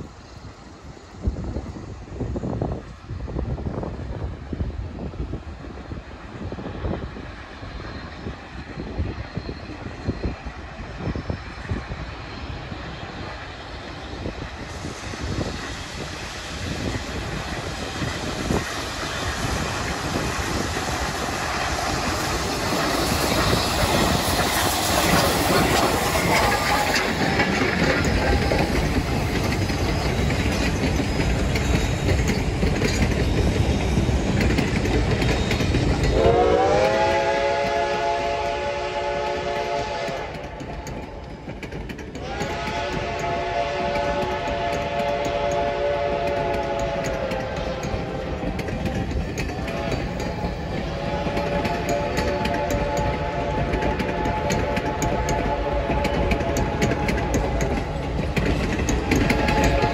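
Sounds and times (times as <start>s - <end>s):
steam locomotive passing: 0.0s - 59.9s
train wheels clickety-clack: 0.0s - 59.9s
chime steam whistle: 35.2s - 40.5s, 42.2s - 58.1s, 58.8s - 59.9s.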